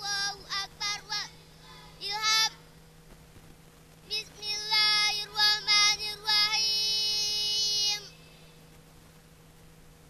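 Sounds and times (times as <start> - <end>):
girl chanting over loudspeaker: 0.0 - 2.7, 4.1 - 8.4.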